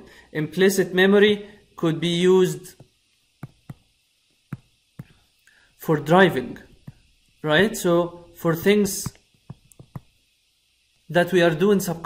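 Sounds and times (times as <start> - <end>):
stylus tapping touchscreen: 2.8 - 3.9, 4.5 - 5.2, 6.7 - 7.1, 8.6 - 10.2
man speaking: 5.8 - 6.7, 7.4 - 9.2, 11.1 - 12.0.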